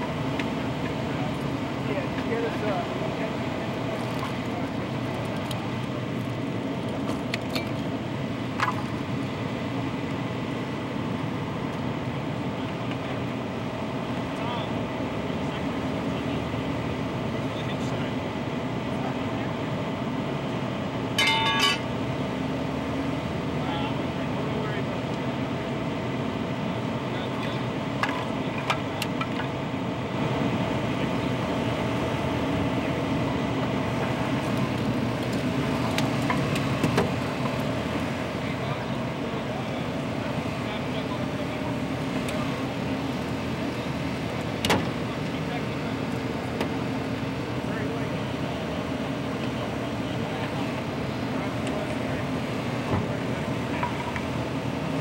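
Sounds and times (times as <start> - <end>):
rescue workers talking: 0.0 - 55.0
vehicle engines droning: 0.0 - 55.0
sharp metal clanks: 21.2 - 21.8.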